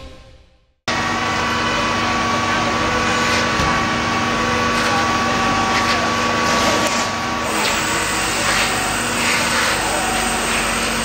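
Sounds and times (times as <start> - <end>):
fire engines and pumps running: 0.9 - 11.0.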